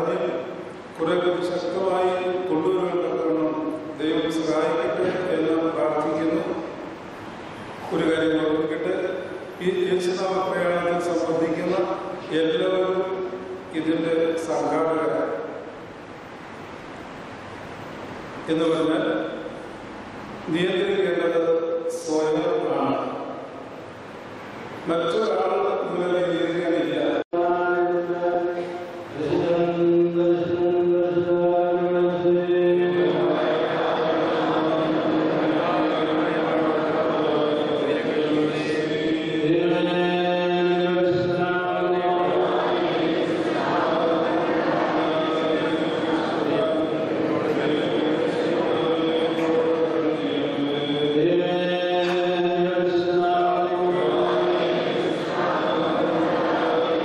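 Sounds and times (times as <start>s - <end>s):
clergy chanting a hymn: 0.0s - 6.8s, 7.8s - 15.7s, 20.4s - 23.7s, 24.8s - 57.0s.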